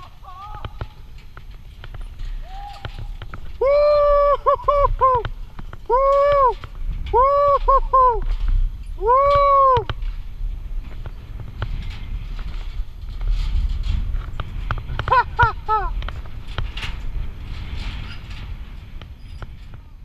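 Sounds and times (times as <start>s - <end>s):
bike tyres rattling on steel deck: 0.0s - 20.0s.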